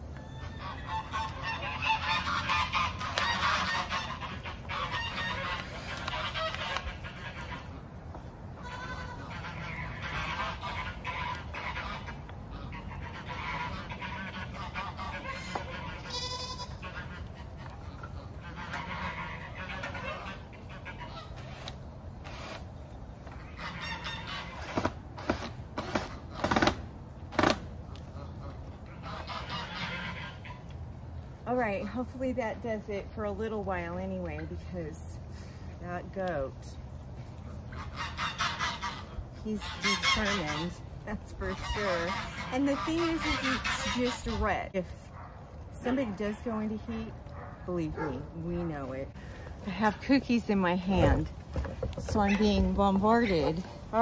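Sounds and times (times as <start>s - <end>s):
farm fowl calling: 0.0s - 26.7s, 27.9s - 54.0s.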